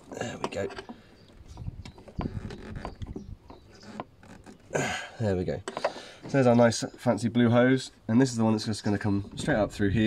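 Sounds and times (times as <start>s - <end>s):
rubber hose creaking on fitting: 0.0s - 6.7s.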